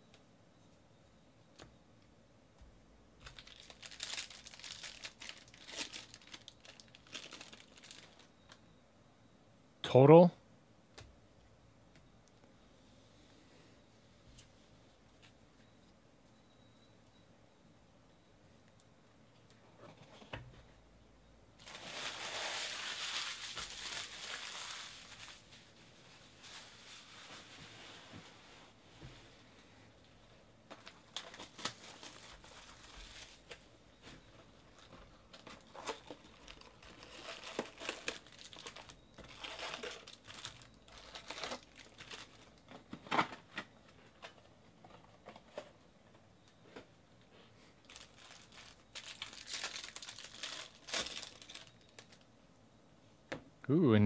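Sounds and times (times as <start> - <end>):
plastic wrappers crinkling and tearing: 3.2 - 8.3, 21.6 - 27.6, 30.8 - 33.6, 34.8 - 42.8, 47.8 - 52.2.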